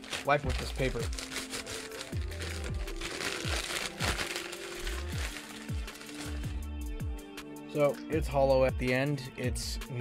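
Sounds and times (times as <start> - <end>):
paper crumpling and rustling: 0.0 - 6.6.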